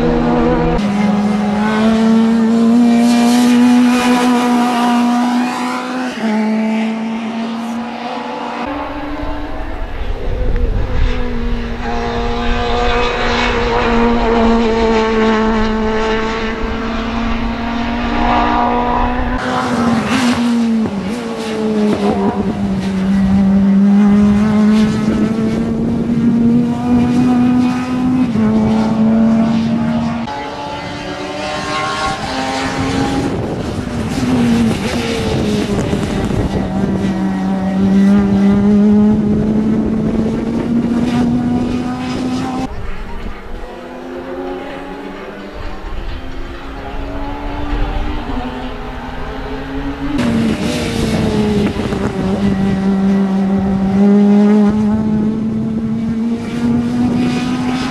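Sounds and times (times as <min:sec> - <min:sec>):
race car engines at high revs: 0:00.0 - 0:57.9.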